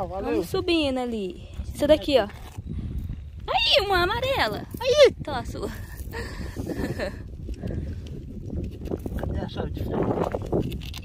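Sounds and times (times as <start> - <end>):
fingers scraping through gravel: 8.1 - 11.0
stones clicking: 10.0 - 11.0.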